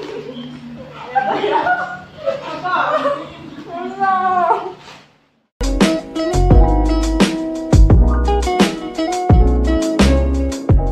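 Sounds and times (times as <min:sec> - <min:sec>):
plucked string music: 0:05.6 - 0:10.9.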